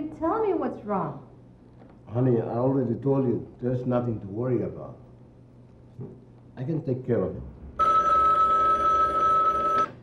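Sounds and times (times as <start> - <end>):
desk telephone ringing: 7.8 - 10.0.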